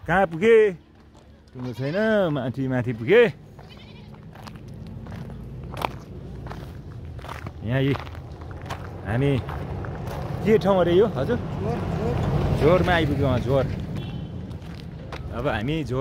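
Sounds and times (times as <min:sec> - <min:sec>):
vehicle engine approaching: 0:02.2 - 0:16.0.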